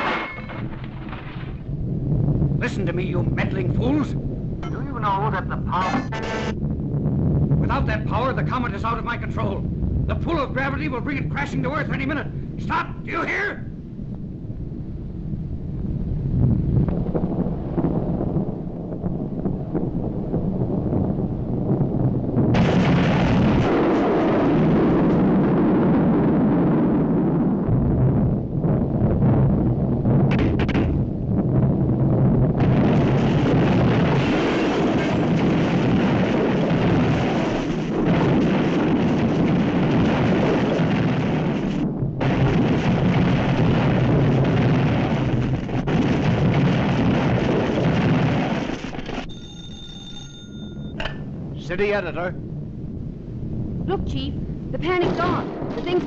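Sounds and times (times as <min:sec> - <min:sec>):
crashing debris: 0:00.0 - 0:01.7, 0:32.6 - 0:49.3
rumble of explosions: 0:00.0 - 0:56.0
telephone ringing: 0:49.3 - 0:51.0.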